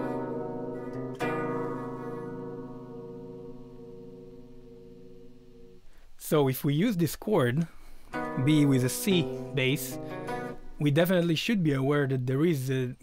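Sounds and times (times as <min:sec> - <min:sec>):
electric guitar chord ringing: 0:00.0 - 0:06.0, 0:08.1 - 0:10.8.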